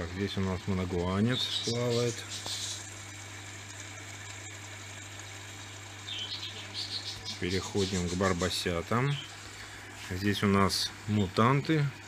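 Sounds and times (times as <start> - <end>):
aquarium air pumps humming: 0.0 - 12.0
sponge filters bubbling: 0.0 - 12.0.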